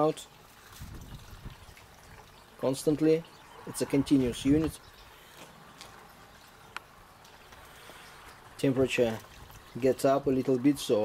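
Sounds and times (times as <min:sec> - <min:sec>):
liquid trickling into funnel: 0:00.0 - 0:10.7.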